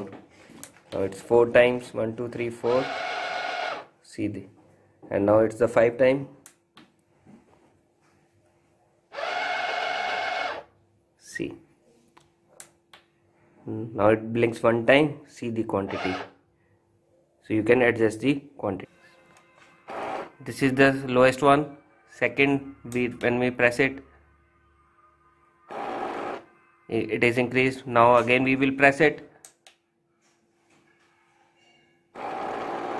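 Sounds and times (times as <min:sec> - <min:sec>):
soap dispenser pump motor: 0:02.6 - 0:03.9, 0:09.1 - 0:10.6, 0:32.2 - 0:32.9.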